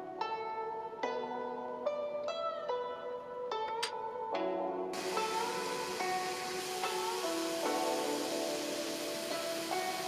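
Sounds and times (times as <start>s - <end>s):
plucked-string music: 0.0s - 10.0s
steady hiss: 5.0s - 10.0s.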